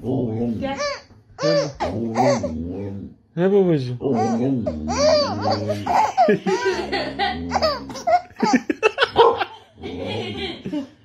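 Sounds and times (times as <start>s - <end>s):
baby laughing: 0.8s - 2.5s, 4.1s - 10.7s.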